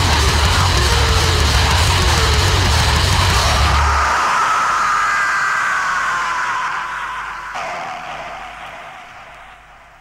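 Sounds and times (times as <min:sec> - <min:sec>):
electric guitar feedback whine: 0:00.4 - 0:10.0.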